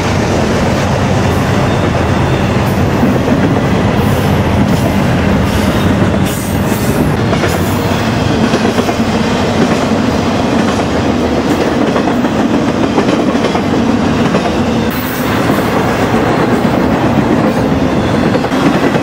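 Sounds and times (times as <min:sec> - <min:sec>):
freight train wheels rumbling on rail: 0:00.0 - 0:19.0.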